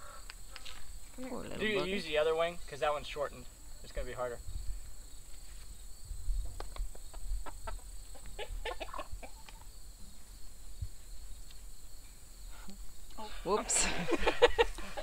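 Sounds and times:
hens clucking: 6.5s - 9.7s.

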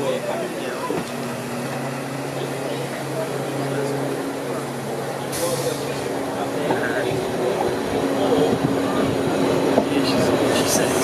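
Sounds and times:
people's voices: 0.0s - 11.0s
railcar engine hum: 0.0s - 11.0s
air brake hiss: 5.3s - 5.8s.

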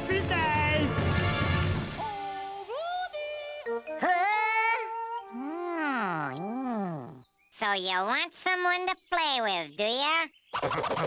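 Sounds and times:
cartoon character wordless vocal: 2.0s - 7.2s.

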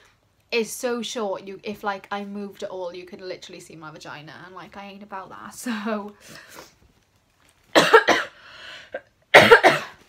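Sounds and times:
woman coughing: 7.8s - 8.4s, 9.3s - 10.0s
soft breath: 8.4s - 9.0s.

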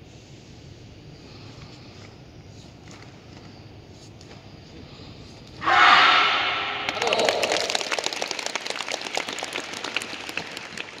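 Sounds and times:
audience clapping and cheering: 6.8s - 11.0s.

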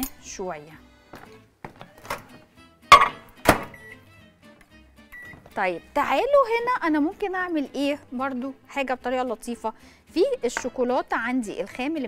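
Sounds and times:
microwave keypad beep: 3.7s - 4.0s, 5.1s - 5.4s.

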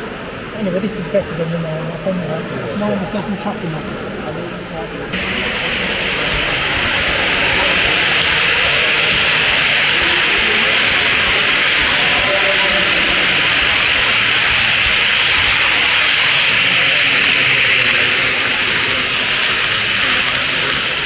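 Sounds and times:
background chatter: 0.0s - 21.0s
model train running on track: 3.7s - 21.0s.

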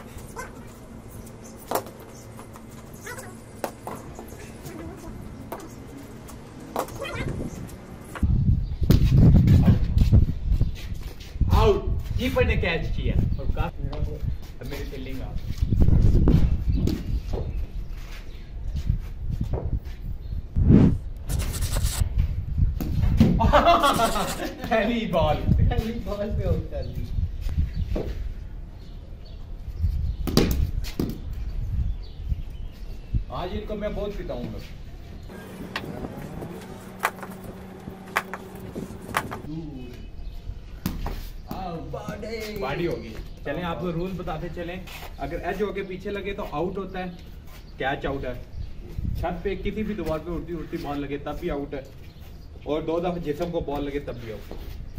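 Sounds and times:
ball bouncing on concrete: 1.6s - 4.3s, 5.4s - 8.3s, 30.2s - 31.3s, 38.1s - 39.5s, 40.8s - 42.8s
wind rumbling on microphone: 7.0s - 24.3s, 25.2s - 34.0s, 34.8s - 39.5s, 48.4s - 49.7s
sandal footsteps on concrete: 35.2s - 39.5s
low rumbling noise: 35.2s - 40.7s.

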